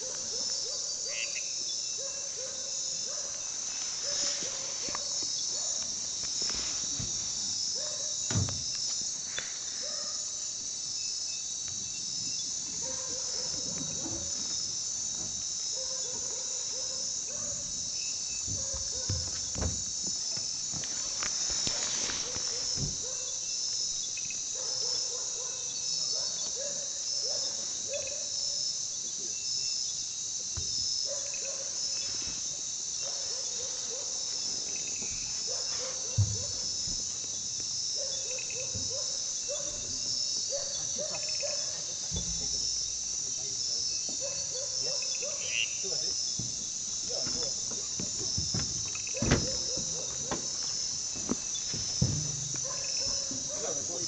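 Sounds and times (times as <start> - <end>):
insect chirping calls: 0.0 - 54.0
insects trilling: 0.0 - 54.0
soft knocks: 18.4 - 20.2, 46.4 - 53.8.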